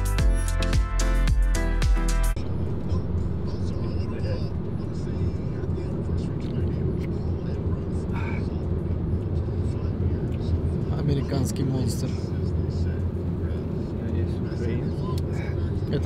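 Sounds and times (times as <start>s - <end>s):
car road and engine drone: 0.0s - 16.0s.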